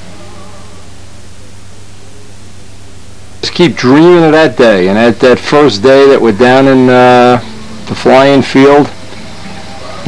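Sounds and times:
faint tone: 0.0s - 3.3s
low hum: 0.0s - 10.0s
steady hiss: 0.0s - 10.0s.

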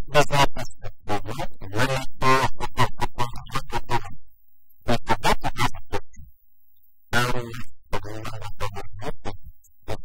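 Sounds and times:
man speaking: 0.0s - 4.1s, 4.9s - 6.0s, 7.1s - 10.0s.

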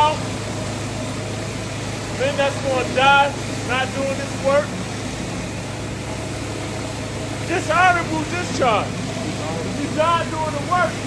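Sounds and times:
city street noise: 0.0s - 11.0s
low machine hum: 0.0s - 11.0s.

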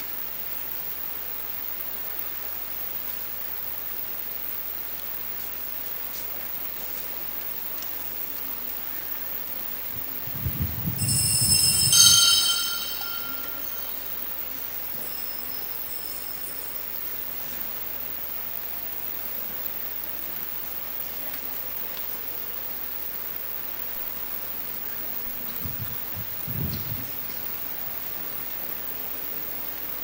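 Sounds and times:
steady background hiss: 0.0s - 30.0s
high metallic ringing: 10.9s - 14.2s.

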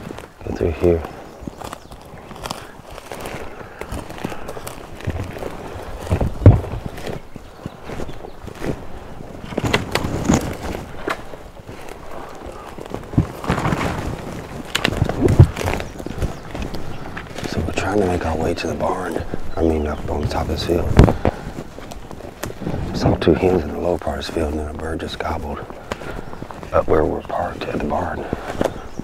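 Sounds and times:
branches scraping: 0.0s - 29.0s
footsteps crunching through dry leaves: 0.0s - 29.0s
twigs snapping: 0.0s - 29.0s
knocks and bumps: 3.8s - 7.4s, 12.9s - 18.5s.

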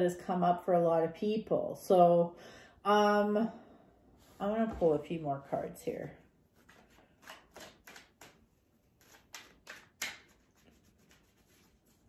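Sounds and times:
cards being shuffled: 6.6s - 12.0s.

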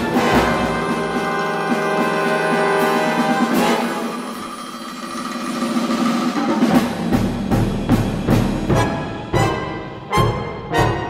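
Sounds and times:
orchestra playing percussion-heavy music: 0.0s - 11.0s.

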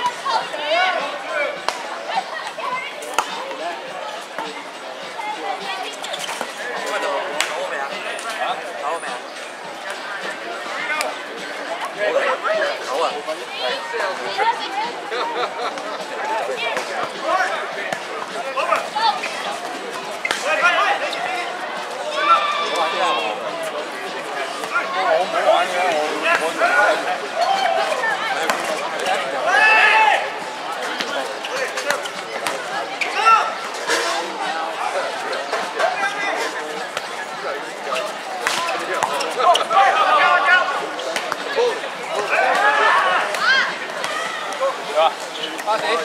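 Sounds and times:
players calling out: 5.5s - 46.0s.

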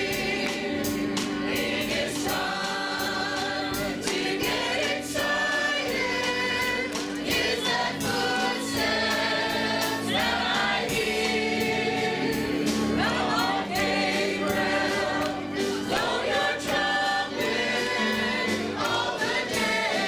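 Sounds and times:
choir singing gospel song: 0.0s - 20.0s
musical accompaniment: 0.0s - 20.0s.

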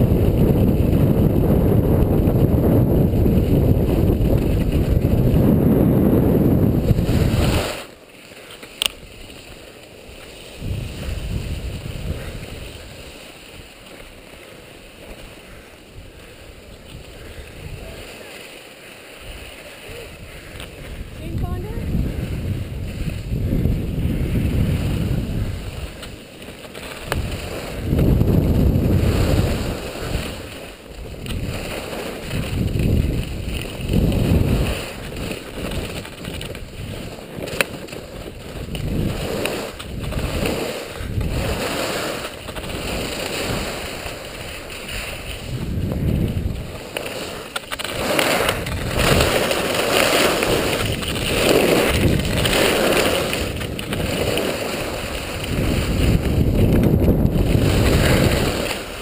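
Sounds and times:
wind rushing over microphone: 0.0s - 7.9s, 10.4s - 14.2s, 15.2s - 18.3s, 19.2s - 59.0s
skis scraping on packed snow: 0.0s - 59.0s.

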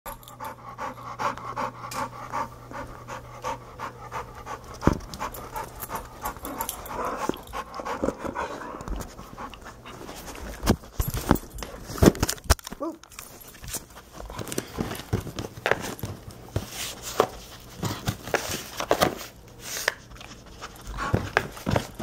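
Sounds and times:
dog panting quickly: 0.1s - 10.3s.

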